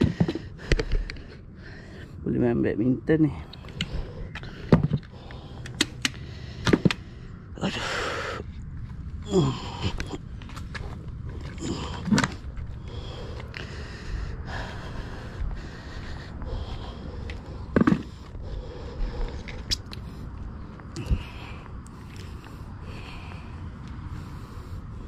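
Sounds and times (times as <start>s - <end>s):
person breathing heavily: 0.0s - 2.3s, 3.3s - 25.0s
wind rumble on microphone: 8.4s - 25.0s
person grunting: 9.2s - 10.3s, 11.5s - 12.3s.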